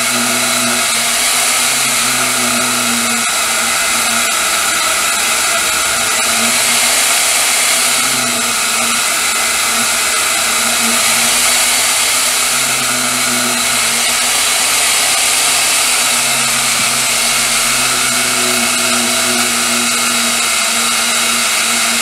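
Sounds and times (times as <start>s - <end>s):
band saw cutting plastic: 0.0s - 22.0s.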